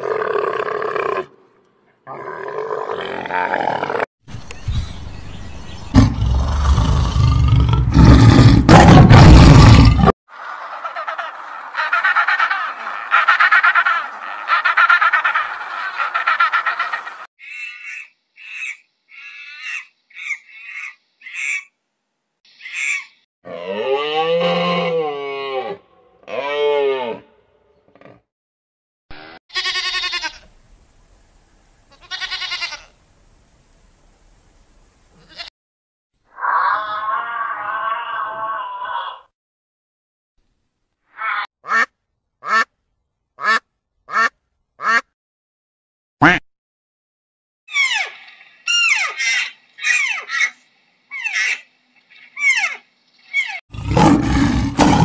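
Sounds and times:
tiger roaring: 5.9s - 10.1s, 53.7s - 55.0s
long pulsing animal call: 36.3s - 39.3s.

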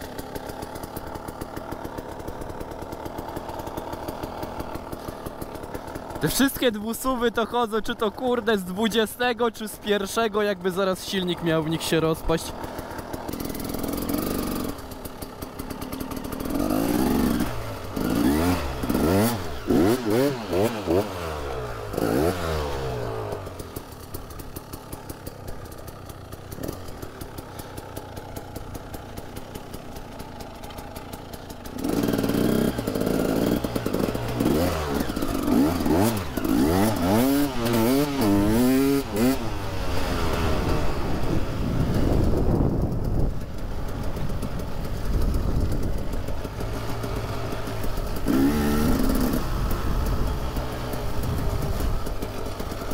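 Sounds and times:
motorcycle engine revving: 0.0s - 52.9s.

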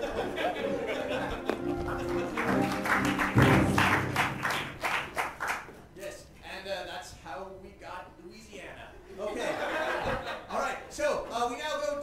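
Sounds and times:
keyboard chords: 0.6s - 4.8s.

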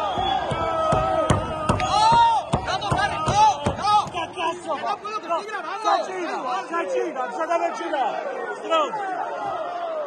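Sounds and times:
voices talking and calling out: 0.8s - 10.0s.

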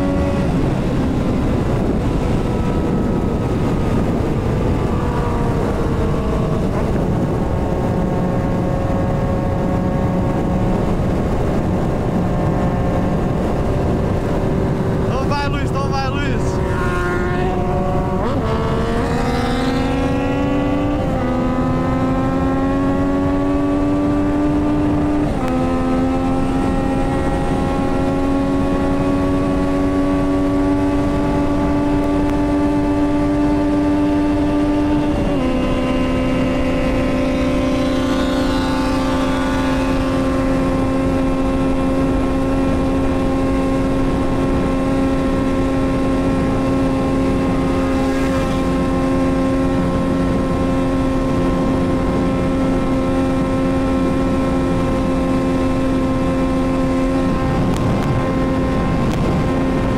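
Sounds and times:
motorcycle engine at full throttle: 0.0s - 59.9s
wind rush on microphone: 0.0s - 59.9s.

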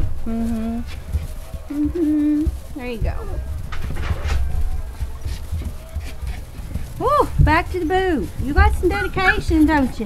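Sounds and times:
low handling thumps: 0.0s - 10.0s
puppies rustling in wood shavings: 0.4s - 10.0s
faint puppy squeaks: 8.9s - 9.6s.

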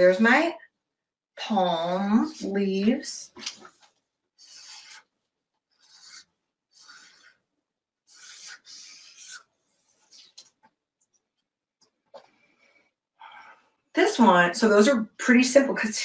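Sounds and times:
marker strokes on paper: 4.4s - 5.1s, 5.7s - 7.4s, 8.1s - 10.6s.

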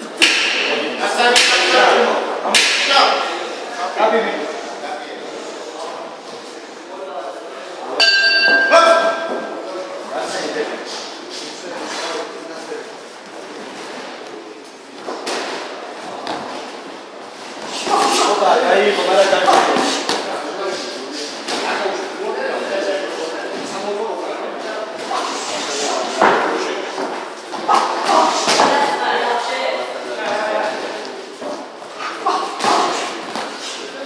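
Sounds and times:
voices talking and calling out: 17.6s - 34.0s.

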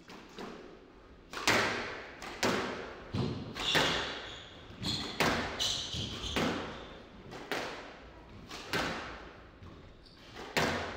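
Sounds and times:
squash ball strikes: 1.3s - 4.2s, 5.0s - 6.7s, 10.4s - 10.9s
shoe squeaking on wooden floor: 3.2s - 7.0s.

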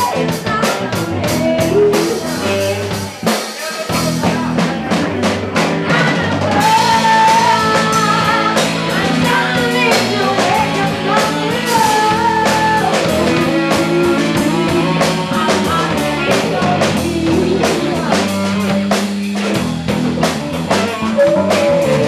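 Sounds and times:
woman singing into microphone: 0.0s - 3.3s, 5.6s - 18.9s, 21.1s - 22.0s
drum kit beating: 0.0s - 22.0s
electric guitars: 0.0s - 22.0s.

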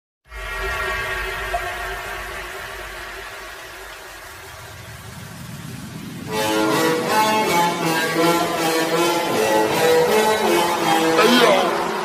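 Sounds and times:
electronic drone: 0.2s - 12.0s
low hum: 0.3s - 10.4s.

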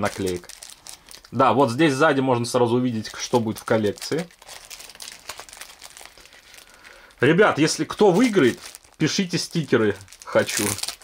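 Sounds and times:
plastic wrap crinkling: 0.0s - 11.0s.

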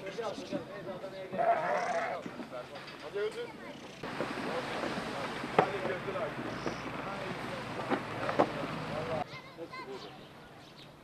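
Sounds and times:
sheep bleating: 1.4s - 2.2s.

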